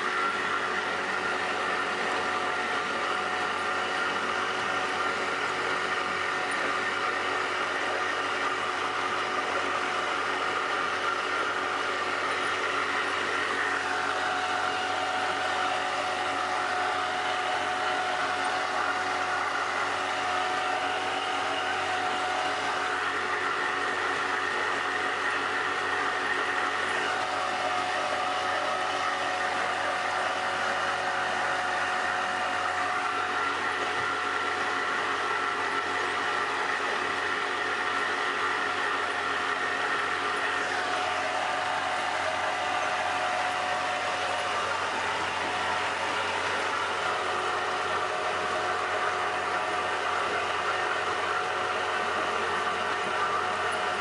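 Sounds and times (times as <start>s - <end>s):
boat motor droning: 0.0s - 54.0s.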